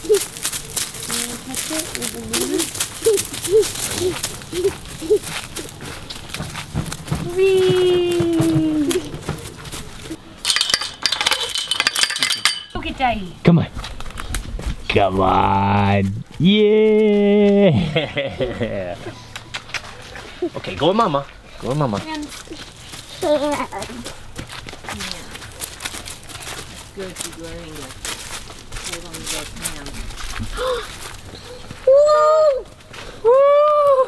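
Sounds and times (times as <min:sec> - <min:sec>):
running footsteps on dry leaves: 0:00.0 - 0:10.3, 0:19.4 - 0:34.0
gate latch and chain rattling: 0:10.4 - 0:12.8.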